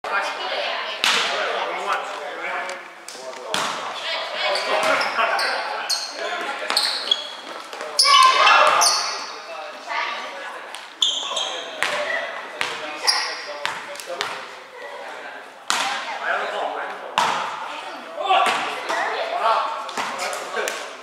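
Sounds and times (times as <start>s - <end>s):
sneakers squeaking on floor: 4.4s - 9.5s, 10.9s - 13.9s.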